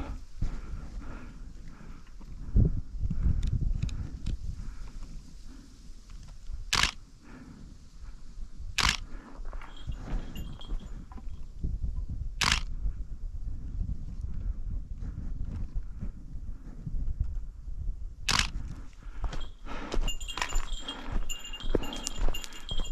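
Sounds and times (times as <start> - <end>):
camera shutter clicks: 8.8 - 9.0, 12.4 - 12.7, 18.3 - 18.5
footsteps on gravel: 19.3 - 22.9.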